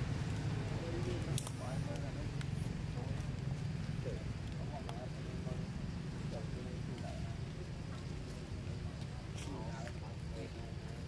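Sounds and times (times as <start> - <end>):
distant voices talking: 0.0 - 11.0
steady low hum: 0.0 - 11.0.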